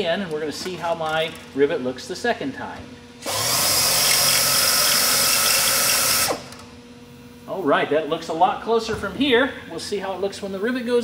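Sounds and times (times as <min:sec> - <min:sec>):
drill cutting aluminium: 0:03.2 - 0:06.6.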